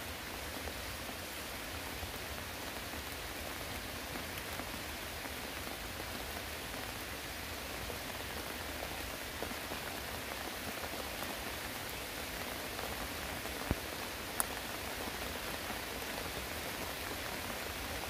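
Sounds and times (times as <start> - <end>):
steady rain hiss: 0.0 - 18.0
faint raindrop ticks: 10.8 - 17.8.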